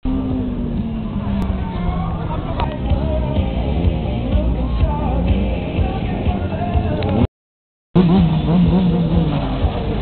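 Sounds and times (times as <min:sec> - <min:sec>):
music playing: 0:01.7 - 0:07.3
motorcycle engine running: 0:08.0 - 0:10.0.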